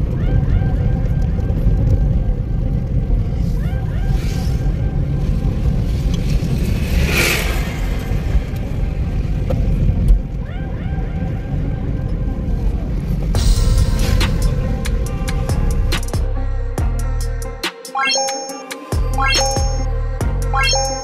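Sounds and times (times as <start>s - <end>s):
engine and tyre rumble: 0.0s - 17.6s
music: 10.1s - 21.0s.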